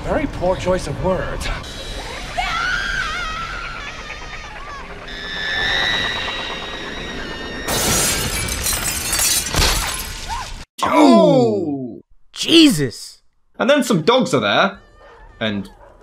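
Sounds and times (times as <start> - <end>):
tense music with high tones: 1.6 - 8.0
loud smashing crash: 7.7 - 10.6.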